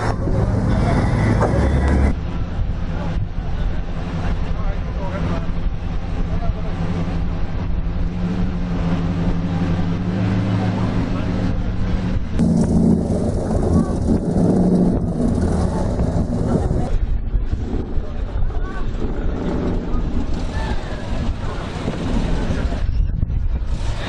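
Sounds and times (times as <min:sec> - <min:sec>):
car engine humming at low revs: 0:00.0 - 0:22.9
voices: 0:00.0 - 0:24.0.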